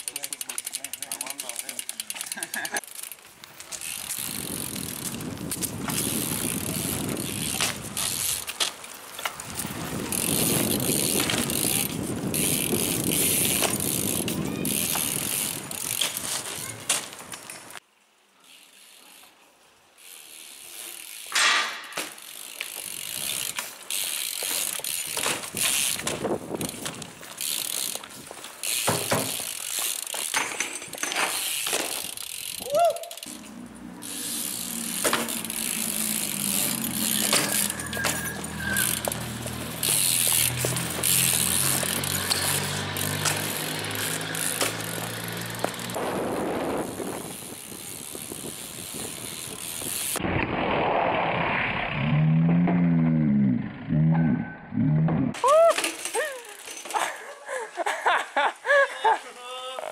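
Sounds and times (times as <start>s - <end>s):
bike tyres rolling on asphalt: 0.0s - 54.2s, 54.8s - 59.9s
wheels knocking: 33.3s - 46.0s
short squeal: 37.2s - 39.1s.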